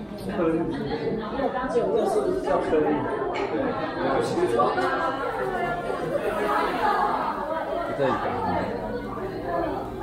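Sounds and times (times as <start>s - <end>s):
overlapping chatter: 0.0s - 10.0s.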